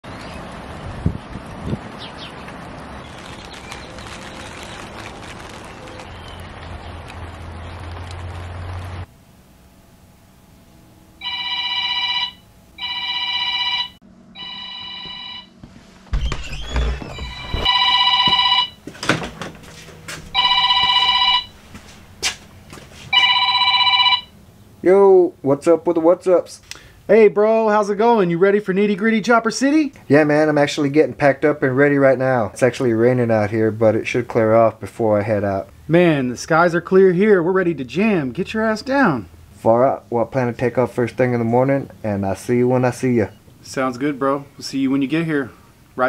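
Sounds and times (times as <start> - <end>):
mobile phone ringing: 11.2 - 15.6, 17.2 - 18.9, 20.3 - 21.6, 23.1 - 24.4.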